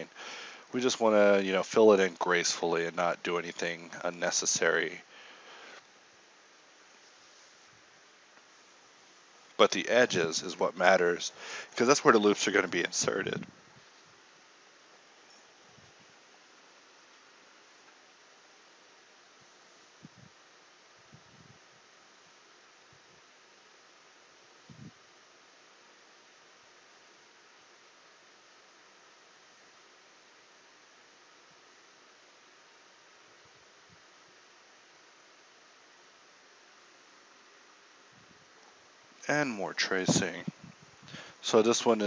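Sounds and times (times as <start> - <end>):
microphone hiss: 0.0 - 42.0.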